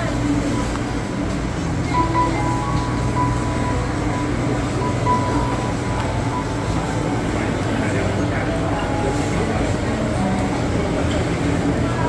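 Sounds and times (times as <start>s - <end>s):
faint background music: 0.0s - 12.0s
general bustle: 0.0s - 12.0s
low machinery hum: 0.0s - 12.0s.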